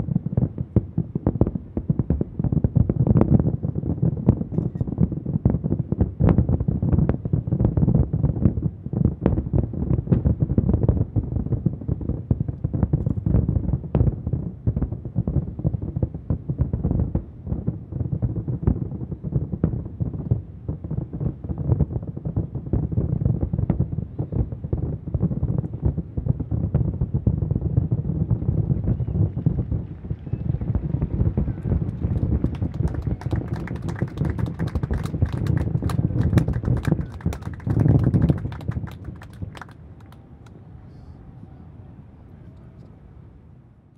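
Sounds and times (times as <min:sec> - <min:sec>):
distant fireworks booms: 0:00.0 - 0:40.2
fireworks crackling reports: 0:28.7 - 0:40.0.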